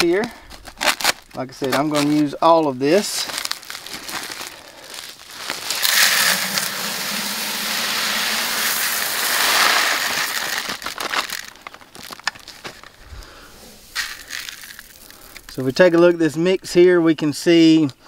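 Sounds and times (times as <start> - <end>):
seeds pouring into plastic bucket: 5.0 - 11.7, 13.7 - 15.6.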